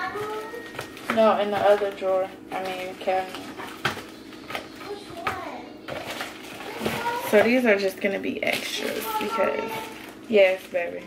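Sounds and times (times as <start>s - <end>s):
plastic bags rustling: 0.0s - 11.0s.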